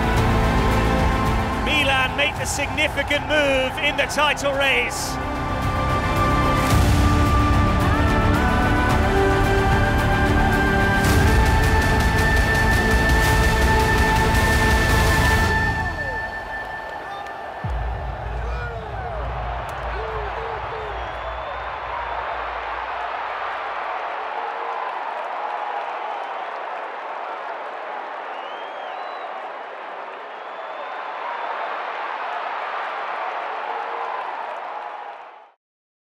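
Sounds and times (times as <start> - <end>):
stadium crowd voices: 0.0 - 7.6, 15.7 - 35.4
low background music: 0.0 - 17.0.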